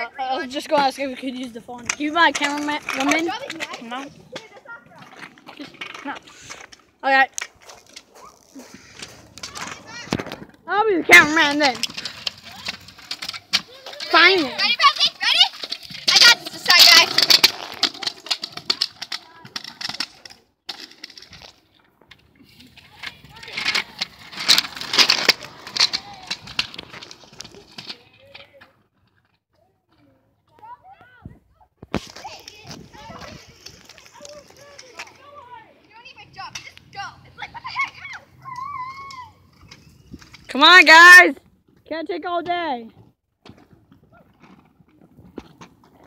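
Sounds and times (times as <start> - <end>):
children's voices calling: 0.0 - 7.2, 8.1 - 12.9, 13.6 - 20.1, 30.4 - 39.9
scooter wheels rolling on concrete: 0.0 - 46.0.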